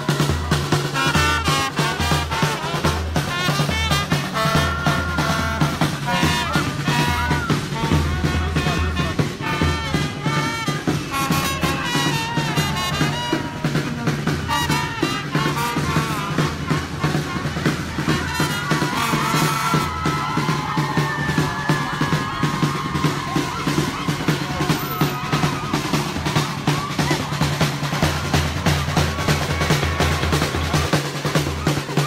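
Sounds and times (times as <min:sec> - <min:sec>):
marching drum band: 0:00.0 - 0:32.0.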